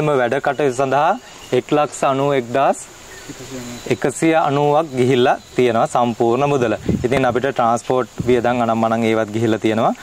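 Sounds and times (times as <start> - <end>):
man speaking: 0.0 - 10.0
high-pitched insect drone: 3.1 - 6.4.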